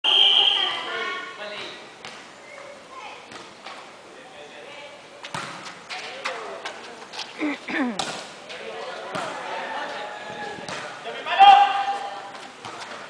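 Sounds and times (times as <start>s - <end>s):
players' voices: 4.0s - 13.0s
volleyball being hit: 8.0s - 8.3s.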